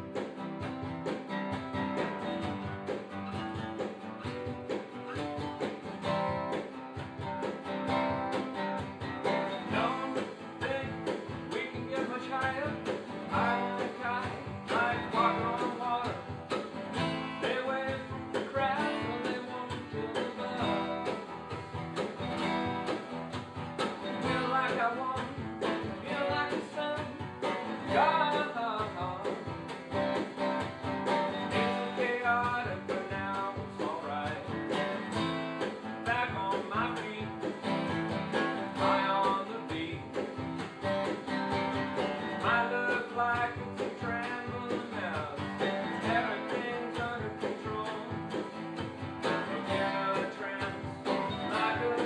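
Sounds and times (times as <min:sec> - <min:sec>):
acoustic guitars strumming: 0:00.0 - 0:52.0
man singing: 0:09.2 - 0:21.2, 0:24.0 - 0:29.5, 0:31.1 - 0:35.1, 0:35.9 - 0:37.9, 0:38.6 - 0:40.4, 0:42.0 - 0:52.0.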